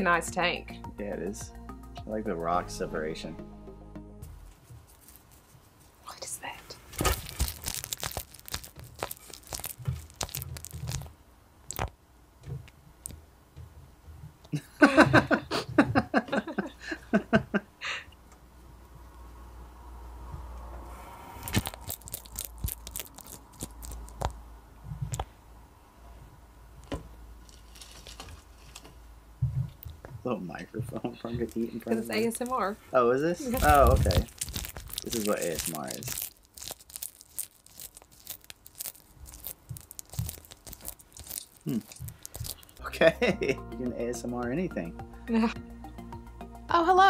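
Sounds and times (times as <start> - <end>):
lizard crunching food: 6.9 - 12.0, 21.4 - 24.4, 27.4 - 28.9, 31.4 - 32.1, 33.5 - 42.9.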